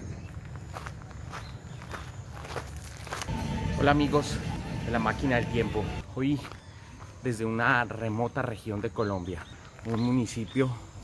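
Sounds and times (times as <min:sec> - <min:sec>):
soft footsteps: 0:00.3 - 0:03.3
man speaking: 0:03.6 - 0:06.6.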